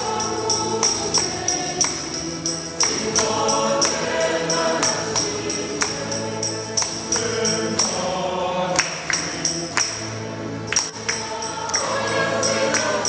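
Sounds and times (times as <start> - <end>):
tambourine beat: 0.0 - 8.2, 8.8 - 13.0
choir singing gospel music: 0.0 - 13.0.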